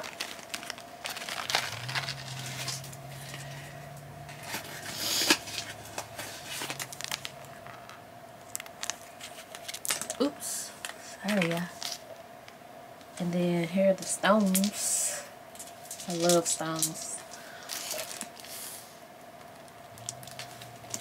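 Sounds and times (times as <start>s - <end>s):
plastic packets crinkling: 0.0s - 12.1s, 15.5s - 18.6s, 19.4s - 21.0s
faint low hum: 0.0s - 21.0s.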